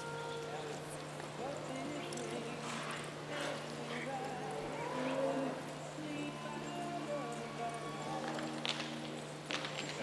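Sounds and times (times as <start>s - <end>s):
indistinct voices: 0.0s - 9.0s
horse hooves in dirt: 0.4s - 5.7s.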